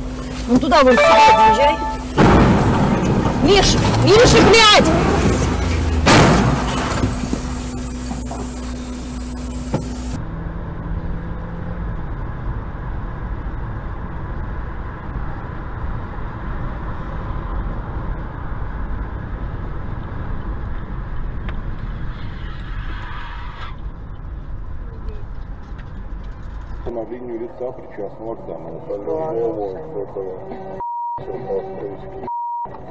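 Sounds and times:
car road and engine rumble: 0:00.0 - 0:32.9
loud bang: 0:01.2 - 0:07.2.

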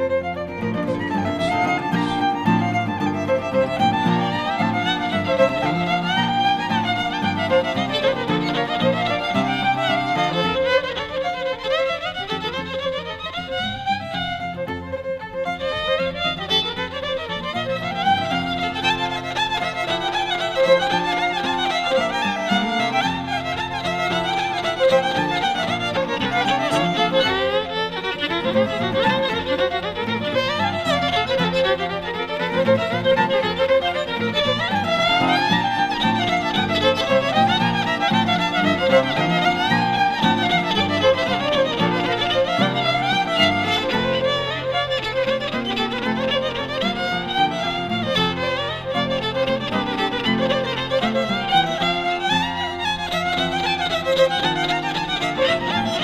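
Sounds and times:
electric violin playing fiddle tune: 0:00.0 - 0:56.0.

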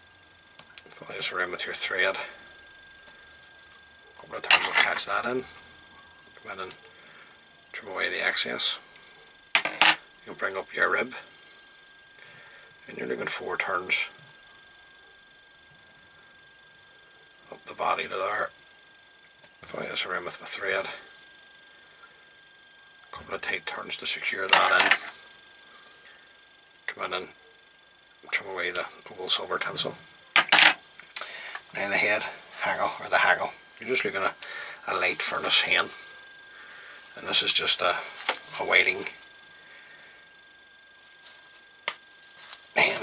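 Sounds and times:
faint high-pitched whine: 0:00.0 - 0:43.0
faint handling sounds: 0:02.2 - 0:07.6, 0:30.0 - 0:43.0.

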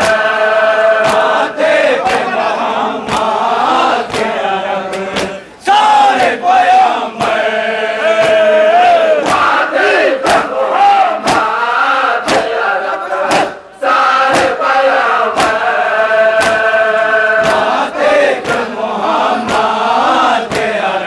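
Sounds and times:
hands slapping chests: 0:00.0 - 0:00.3, 0:01.0 - 0:02.4, 0:03.0 - 0:05.4, 0:08.2 - 0:09.6, 0:10.2 - 0:10.6, 0:11.2 - 0:11.6, 0:12.2 - 0:13.6, 0:14.2 - 0:16.8, 0:17.4 - 0:20.8
men chanting in unison: 0:00.0 - 0:21.0.

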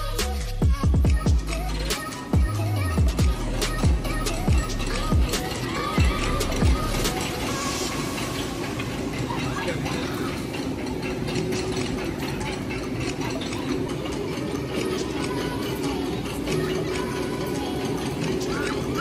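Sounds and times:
faint voices: 0:04.2 - 0:19.0.

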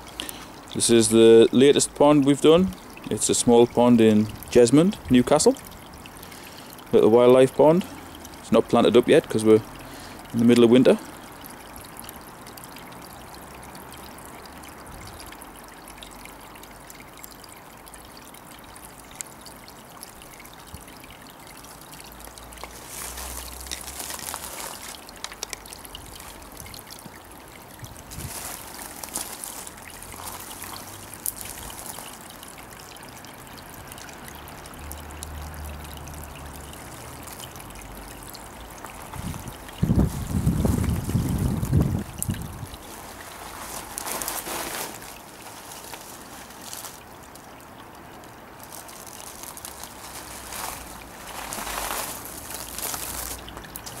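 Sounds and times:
water trickling into pond: 0:00.0 - 0:54.0.

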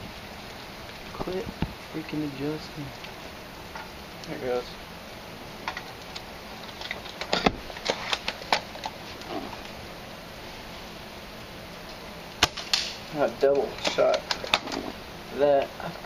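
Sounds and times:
airsoft rifle sharp crack: 0:12.4 - 0:13.1.

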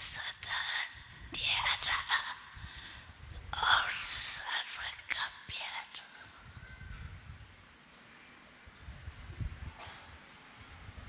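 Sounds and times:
woman whispering: 0:00.0 - 0:02.7, 0:03.4 - 0:06.4.

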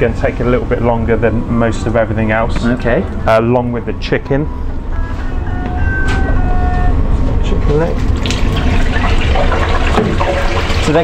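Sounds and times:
steady low hum: 0:00.0 - 0:09.0
oil sizzling and bubbling in fryer: 0:08.1 - 0:11.0.

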